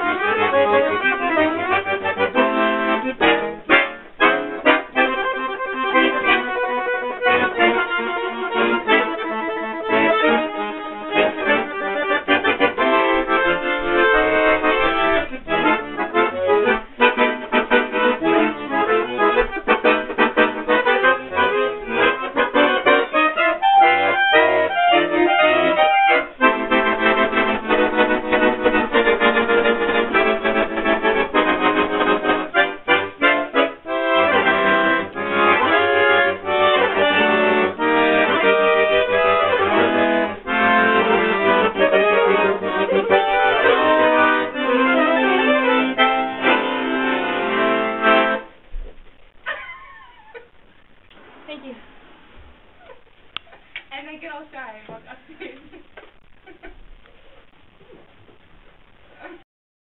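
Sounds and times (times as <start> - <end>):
solo accordion playing: 0.0 - 48.6.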